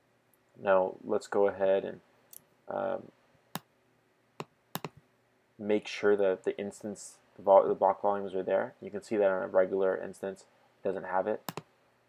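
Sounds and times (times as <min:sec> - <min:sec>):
computer mouse clicks: 0:04.4 - 0:05.0, 0:11.4 - 0:11.7.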